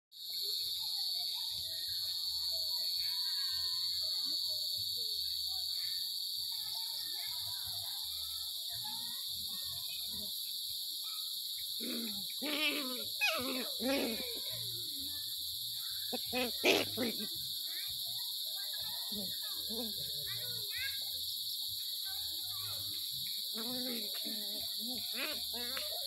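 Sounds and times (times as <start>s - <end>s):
faint chirps: 0.2s - 26.0s
insect chorus drone: 0.2s - 26.0s
puppy whining: 11.8s - 14.4s.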